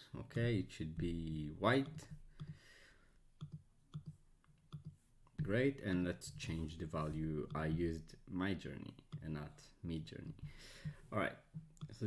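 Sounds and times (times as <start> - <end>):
computer mouse clicks: 2.4 - 2.6, 3.4 - 5.5.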